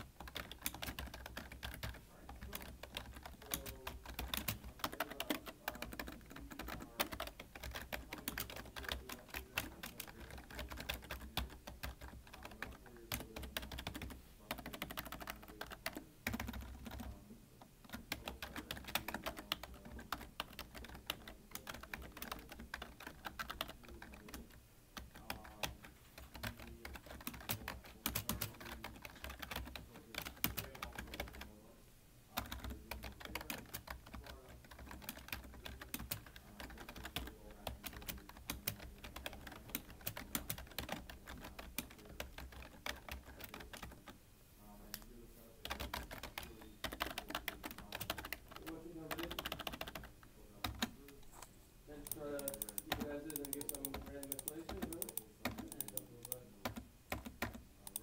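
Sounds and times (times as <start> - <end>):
fast typing on keyboard: 0.0 - 17.2, 17.8 - 31.6, 32.3 - 44.2, 45.6 - 51.2, 52.0 - 58.0.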